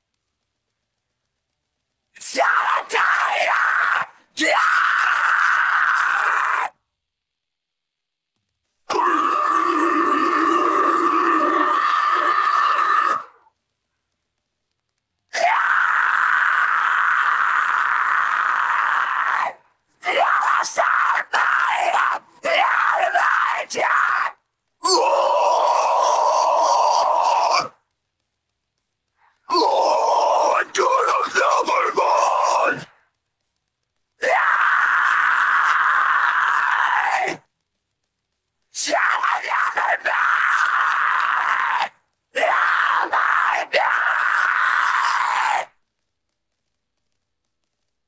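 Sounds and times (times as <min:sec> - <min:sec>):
harsh vocal scream: 0:02.2 - 0:06.8, 0:08.9 - 0:13.5, 0:15.3 - 0:27.8, 0:29.4 - 0:33.0, 0:34.2 - 0:37.5, 0:38.7 - 0:45.8.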